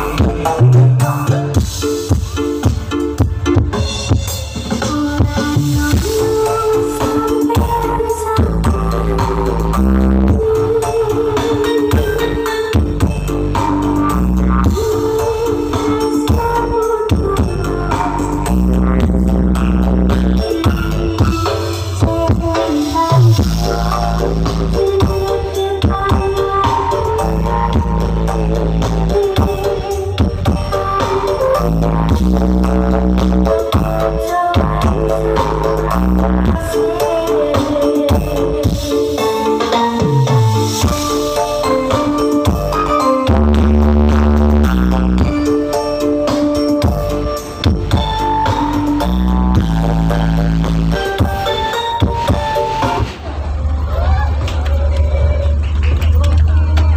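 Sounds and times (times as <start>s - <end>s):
loud bass-heavy dance music: 0.0s - 56.9s
deep bass note: 18.4s - 22.4s.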